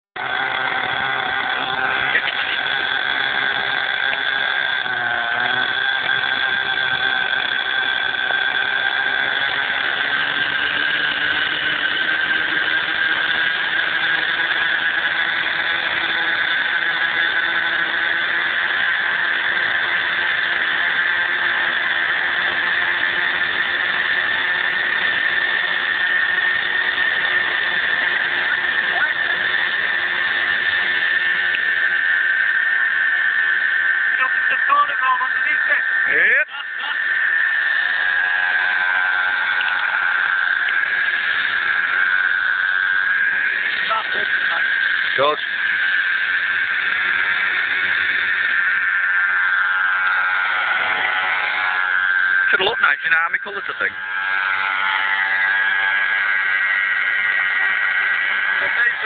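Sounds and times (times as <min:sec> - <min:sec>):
model helicopter whine: 0:00.0 - 0:59.0.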